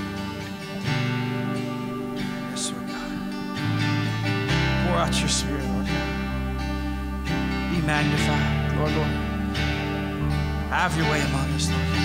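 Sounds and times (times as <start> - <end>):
deep low notes: 0.0 - 12.0
strummed acoustic guitar: 0.0 - 12.0
worship band playing: 0.0 - 12.0.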